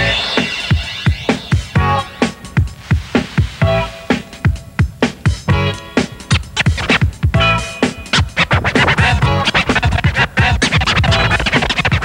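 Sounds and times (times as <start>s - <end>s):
vinyl record scratching: 0.0s - 12.0s.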